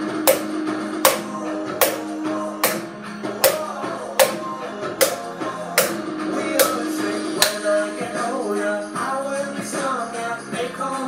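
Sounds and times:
guitar music: 0.0s - 9.2s
wooden spoon beating plastic bowl: 0.3s - 7.7s.

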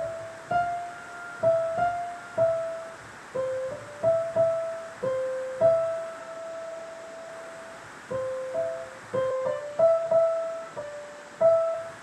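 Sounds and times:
faint hiss: 0.0s - 12.0s
held piano note: 0.0s - 12.0s.

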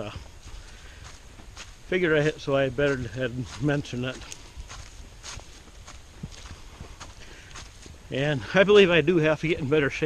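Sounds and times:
footsteps on woodland trail: 0.0s - 10.0s.

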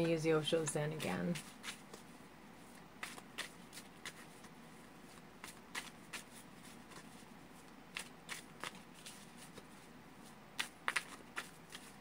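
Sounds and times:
cards being shuffled: 0.0s - 2.1s, 2.7s - 9.9s, 10.6s - 12.0s.

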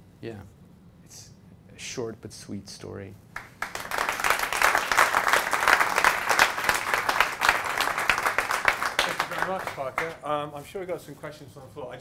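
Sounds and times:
audience applauding: 3.4s - 10.2s.

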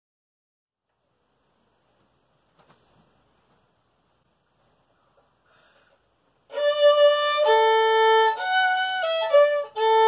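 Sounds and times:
solo violin slow melody: 6.4s - 10.0s.

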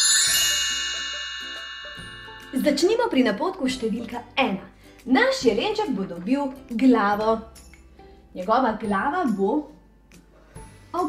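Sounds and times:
bell-like chime chord: 0.0s - 4.2s.

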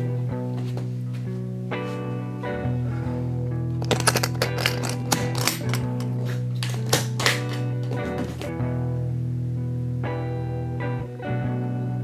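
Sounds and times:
background guitar music: 0.0s - 12.0s
guitar case latches snapping open: 3.8s - 8.0s.

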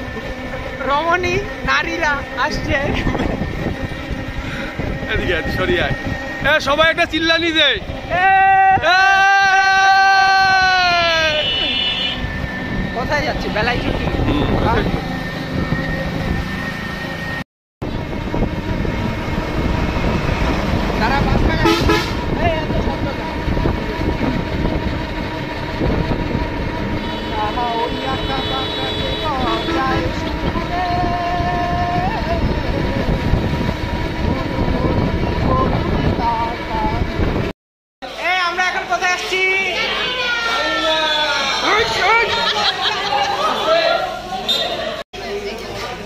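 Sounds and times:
road and engine noise: 0.0s - 46.0s
vehicle horns honking: 11.2s - 12.7s, 21.5s - 22.4s, 26.9s - 30.7s, 44.3s - 45.0s.

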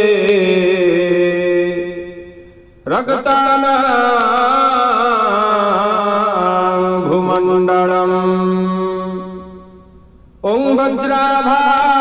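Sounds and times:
man chanting: 0.0s - 9.8s, 10.4s - 12.0s.

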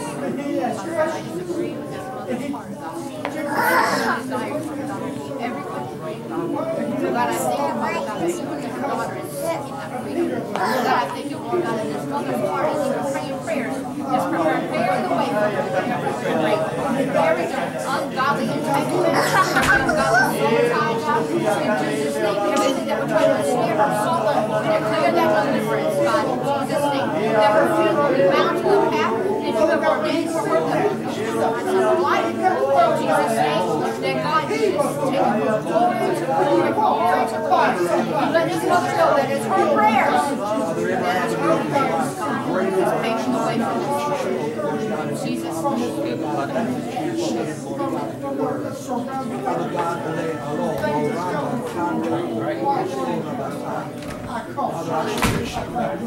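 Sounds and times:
murmur of many voices praying: 0.0s - 56.0s.

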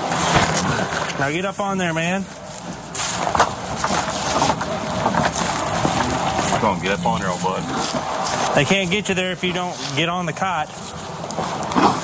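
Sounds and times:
knocks and rustles of people moving: 0.0s - 12.0s.

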